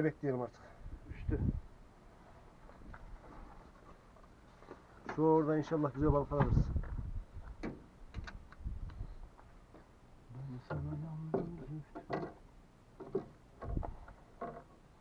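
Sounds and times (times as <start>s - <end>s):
low voice: 10.3s - 12.0s
fishing gear clicking and knocking: 11.4s - 12.4s.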